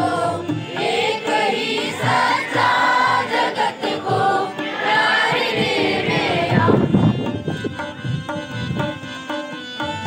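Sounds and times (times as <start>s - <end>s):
group singing a devotional song: 0.0s - 7.2s
dholak drum beat: 0.0s - 10.0s.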